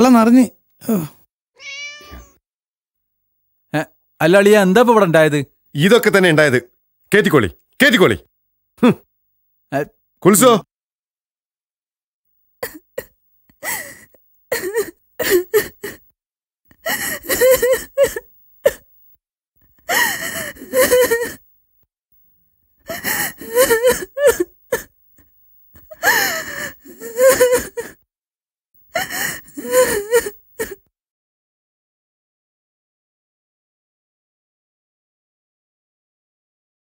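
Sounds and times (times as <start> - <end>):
woman sobbing and wailing: 12.6 - 16.1, 16.8 - 18.8, 19.8 - 21.4, 22.8 - 24.9, 25.8 - 28.0, 28.9 - 30.9.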